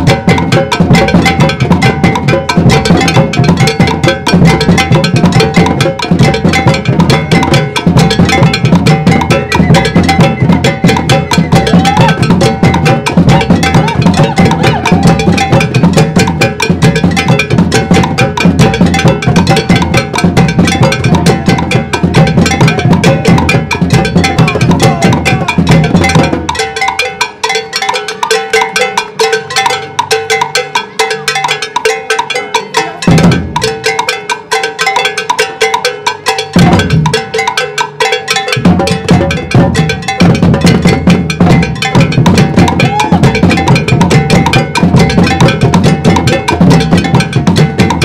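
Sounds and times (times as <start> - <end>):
drum group playing groove: 0.0 - 48.0.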